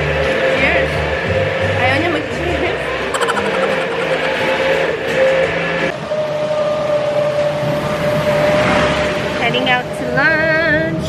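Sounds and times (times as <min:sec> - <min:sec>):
steady tone: 0:03.2 - 0:05.4.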